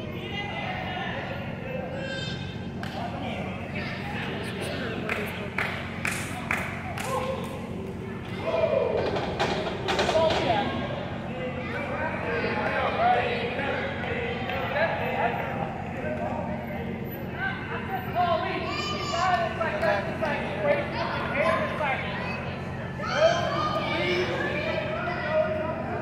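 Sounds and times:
indistinct shouting and talking: 0.0 - 26.0.

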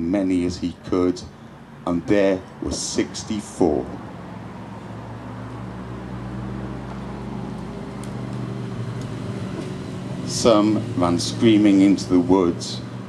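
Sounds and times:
vehicle engine hum: 0.0 - 13.0.

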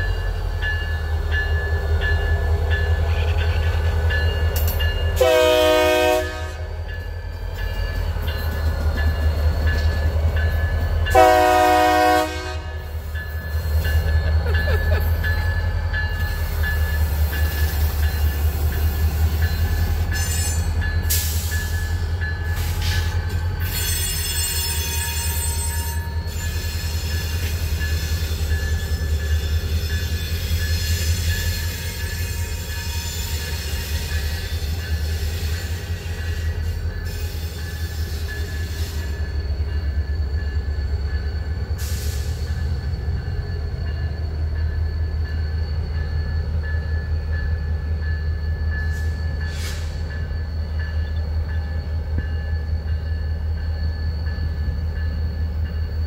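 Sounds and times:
diesel locomotive rumble: 0.0 - 56.0
locomotive horn blasts: 5.2 - 6.8, 11.1 - 13.0.

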